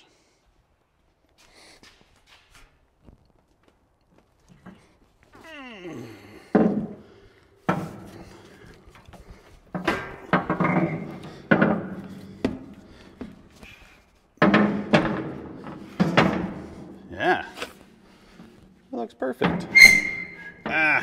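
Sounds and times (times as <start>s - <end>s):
metal scraping: 19.4s - 21.0s.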